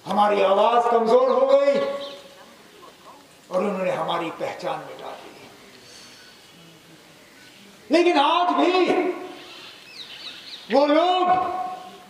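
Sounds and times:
man speaking: 0.0s - 2.0s, 3.5s - 5.6s, 7.9s - 9.4s, 10.7s - 12.0s
faint bird chirps: 5.3s - 7.8s, 9.3s - 10.8s.

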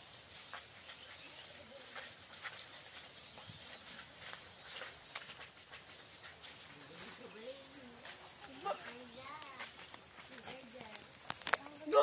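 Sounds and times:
goat hooves tapping on dirt: 0.0s - 12.0s.

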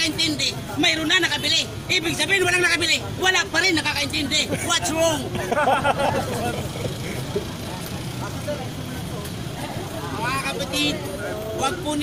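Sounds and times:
city street traffic rumble: 0.0s - 12.0s
faint crowd voices: 0.0s - 12.0s.

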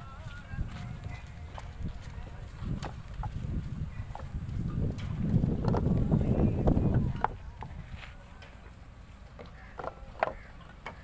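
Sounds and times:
clay bricks knocking together: 9.7s - 11.0s.

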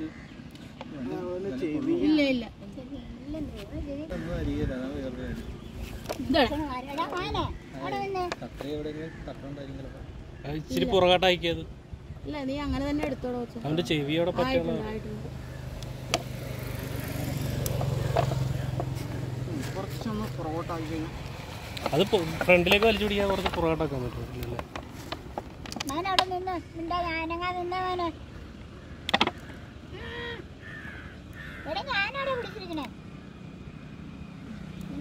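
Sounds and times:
vehicle engine humming: 0.0s - 35.0s
vehicle engine running: 13.8s - 29.6s.

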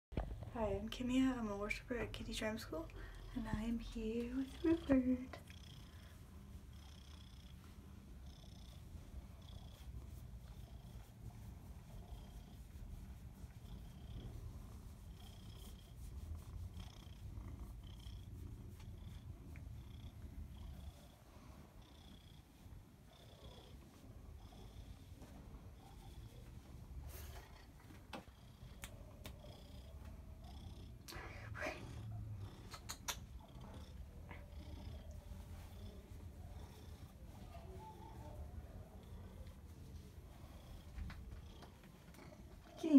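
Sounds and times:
cat purring: 0.2s - 42.9s.

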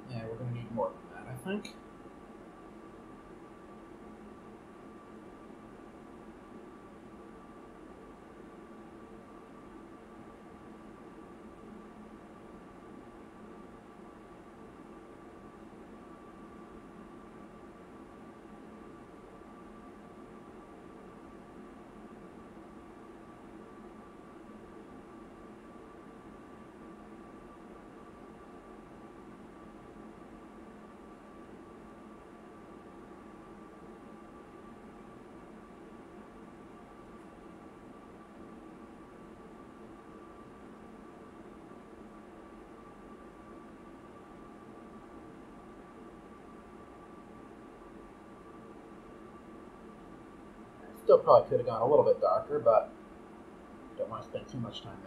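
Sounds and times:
high-pitched whine: 0.0s - 1.8s, 2.6s - 53.1s, 53.7s - 55.0s
equipment hum and hiss: 0.0s - 55.0s.

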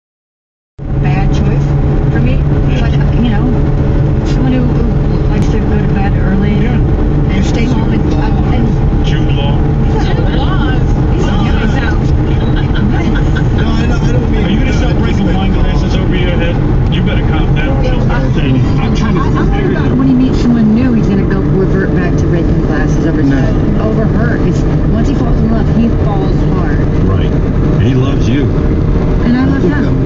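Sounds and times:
car cabin road and engine noise: 0.8s - 30.0s.

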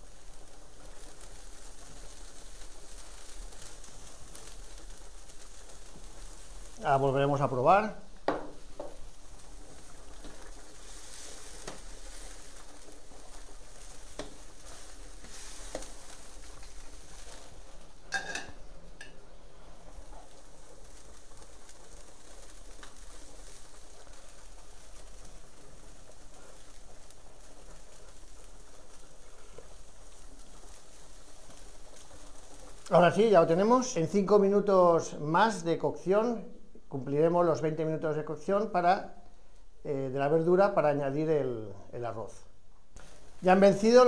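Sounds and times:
broth boiling with sizzling hiss: 0.0s - 44.0s.

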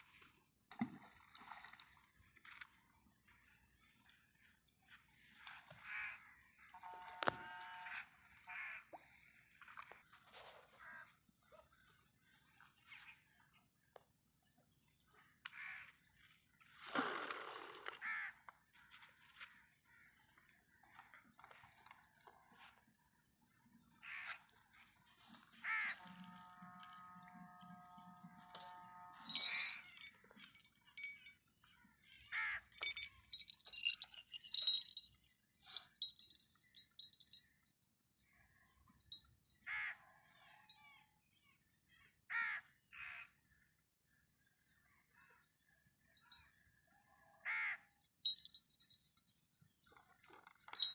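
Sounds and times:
crows cawing: 25.6s - 26.5s, 39.7s - 40.0s, 42.3s - 43.3s, 47.4s - 47.8s.

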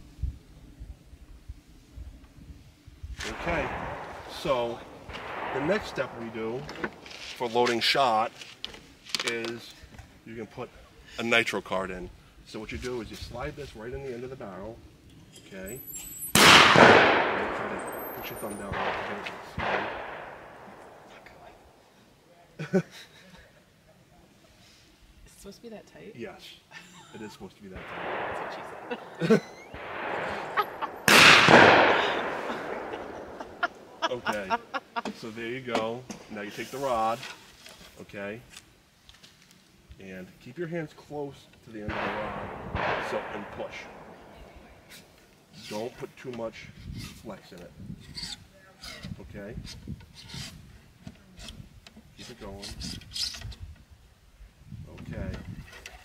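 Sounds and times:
distant gunshot: 3.2s - 7.4s, 16.4s - 21.7s, 27.8s - 34.0s, 41.9s - 44.9s
ramrod scraping inside gun barrel: 46.8s - 47.3s, 48.0s - 50.7s, 51.4s - 53.6s.

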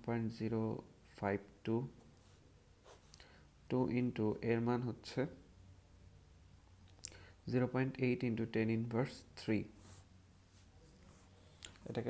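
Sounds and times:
pencil scratching on paper: 2.1s - 3.1s, 9.8s - 11.4s.

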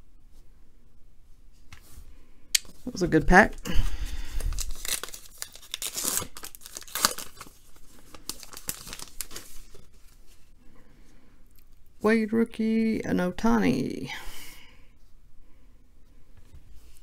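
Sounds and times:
wrapper tearing and crinkling: 4.0s - 9.8s.

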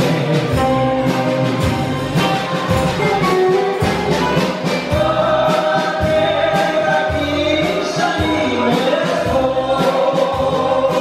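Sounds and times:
live band playing: 0.0s - 11.0s
person singing: 3.3s - 11.0s.

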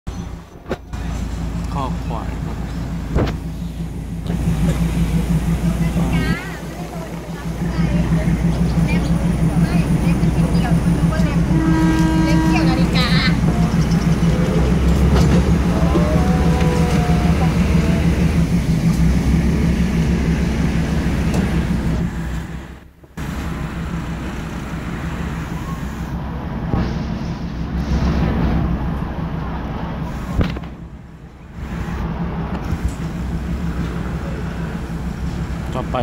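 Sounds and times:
vehicle engine running: 0.1s - 36.0s
voices: 0.5s - 19.1s, 31.3s - 36.0s.

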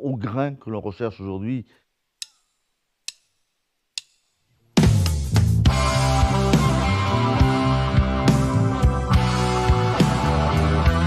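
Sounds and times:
drumsticks clicked together: 2.2s - 2.5s, 3.1s - 3.4s, 4.0s - 4.2s.

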